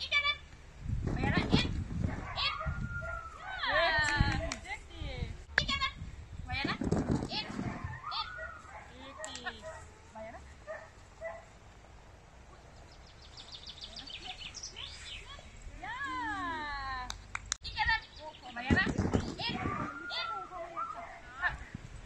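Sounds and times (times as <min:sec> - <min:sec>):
dog yelping barks: 0:02.1 - 0:03.7, 0:07.6 - 0:09.9, 0:19.5 - 0:21.3.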